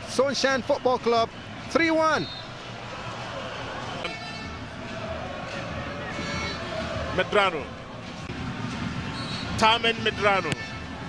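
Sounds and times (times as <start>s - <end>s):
stadium crowd noise: 0.0s - 11.0s
faint horn toots: 5.9s - 6.8s.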